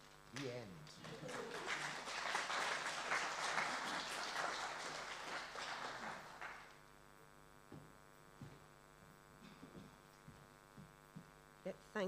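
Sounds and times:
audience applauding: 0.4 - 6.8.

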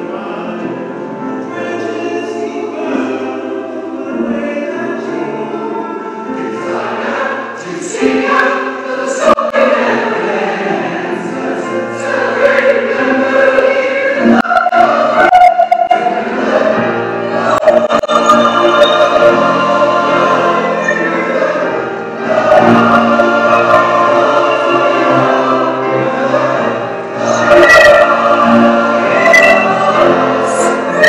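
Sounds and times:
choir singing a hymn: 0.0 - 31.0.

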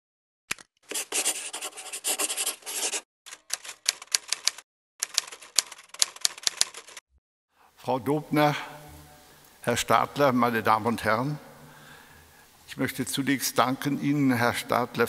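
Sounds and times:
marker scribbling scratch effect: 0.9 - 3.1
sharp typing clicks: 3.3 - 7.0.

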